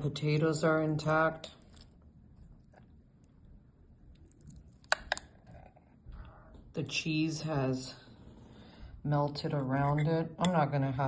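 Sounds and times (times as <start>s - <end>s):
wet squishing of potatoes: 1.0s - 6.0s.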